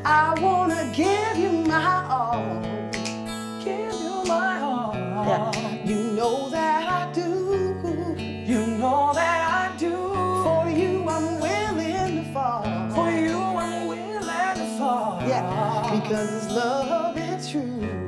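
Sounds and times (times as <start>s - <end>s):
acoustic guitar strumming: 0.0s - 18.0s
person singing: 0.0s - 18.0s.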